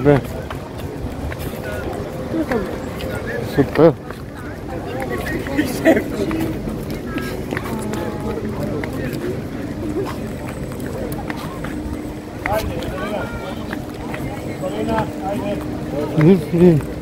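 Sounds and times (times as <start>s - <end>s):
people chattering: 0.0s - 17.0s.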